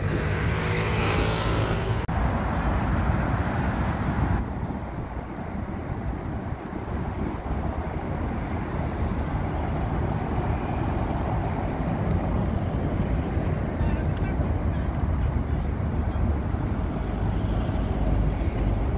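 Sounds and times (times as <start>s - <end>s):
low traffic rumble: 0.0s - 18.9s
vehicle engines running: 0.0s - 18.9s.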